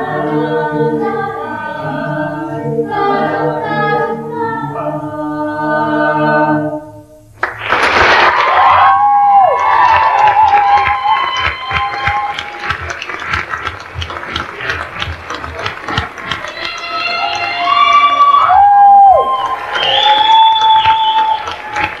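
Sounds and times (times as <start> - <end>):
audience applauding and cheering: 7.4 - 22.0
loud high whistles: 17.6 - 22.0.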